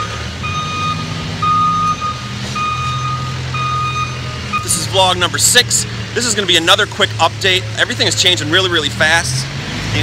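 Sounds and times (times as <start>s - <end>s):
back-up alarm beeping: 0.0s - 5.0s.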